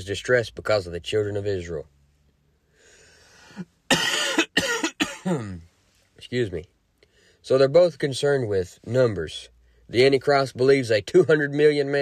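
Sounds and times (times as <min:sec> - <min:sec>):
man coughing: 0:03.5 - 0:05.6.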